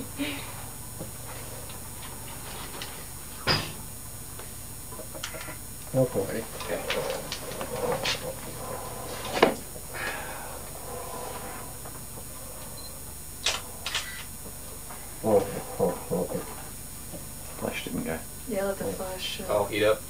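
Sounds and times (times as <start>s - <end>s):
low unclear talk: 15.2s - 16.6s.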